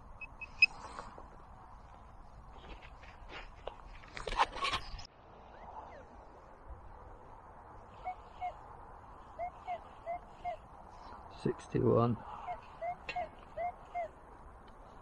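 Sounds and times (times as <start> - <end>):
metal detector short beeps: 0.2 - 0.8.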